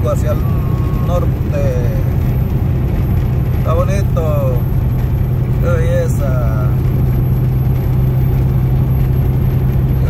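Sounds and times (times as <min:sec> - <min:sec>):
low engine drone: 0:00.0 - 0:10.0
road noise: 0:00.0 - 0:10.0.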